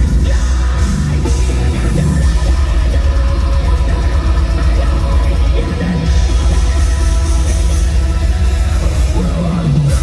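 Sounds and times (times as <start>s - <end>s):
distorted guitars: 0.0s - 10.0s
fast drumming: 0.0s - 10.0s.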